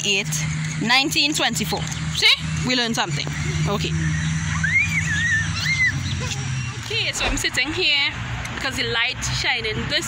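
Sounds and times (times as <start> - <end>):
steady low hum: 0.0 - 8.4
high whistle tune: 4.5 - 6.8.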